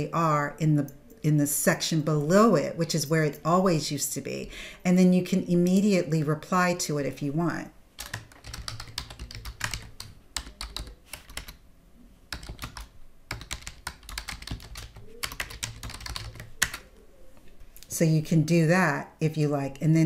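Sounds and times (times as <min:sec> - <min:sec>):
typing on a computer keyboard: 0:08.0 - 0:11.6, 0:12.3 - 0:16.9.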